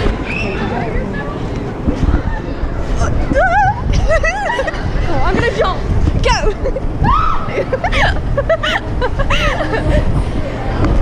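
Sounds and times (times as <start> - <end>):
crowd babble: 0.0 - 11.0
steady low rumble: 0.0 - 11.0
girls squealing excitedly: 7.0 - 9.7.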